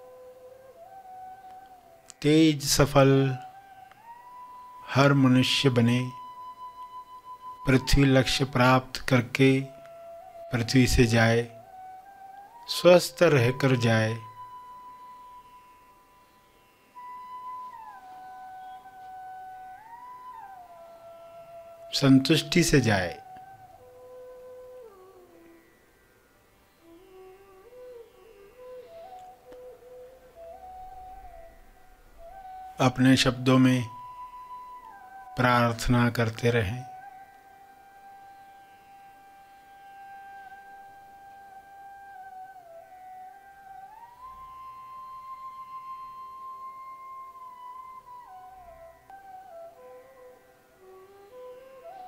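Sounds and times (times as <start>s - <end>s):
faint music holding high note: 0.0s - 52.0s.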